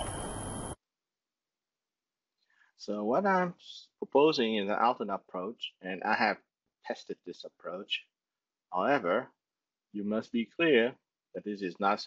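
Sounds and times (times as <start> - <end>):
background hiss: 0.0 - 0.8
faint high-pitched whine: 0.0 - 0.8.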